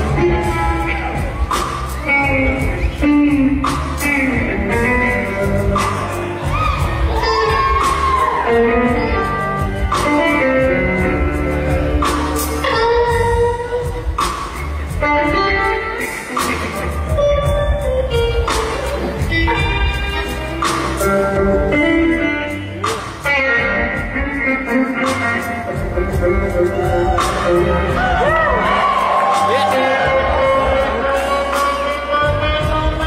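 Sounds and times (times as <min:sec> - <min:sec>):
blues band playing: 0:00.0 - 0:33.0
electric guitar holding notes: 0:00.0 - 0:33.0.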